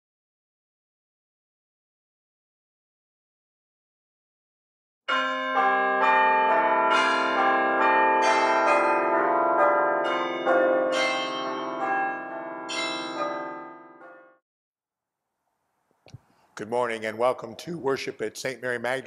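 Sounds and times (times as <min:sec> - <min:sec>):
church bells pealing: 0:05.1 - 0:14.3.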